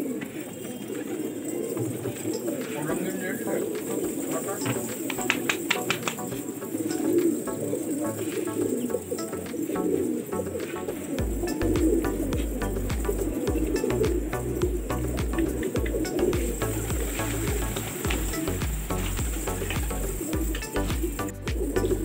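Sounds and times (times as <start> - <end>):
pigeons cooing: 0.0 - 22.0
background music with bass: 4.0 - 22.0
sharp clicks: 4.7 - 7.5.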